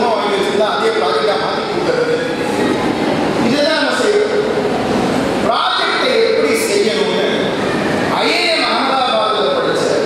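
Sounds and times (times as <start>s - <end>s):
man talking into a microphone: 0.0s - 2.4s, 3.4s - 4.5s, 5.4s - 7.5s, 8.1s - 10.0s.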